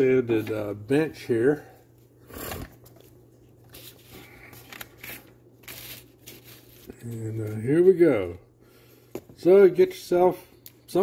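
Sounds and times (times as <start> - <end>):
low steady hum: 0.0 - 11.0
paper rustling and scraping: 2.4 - 7.8.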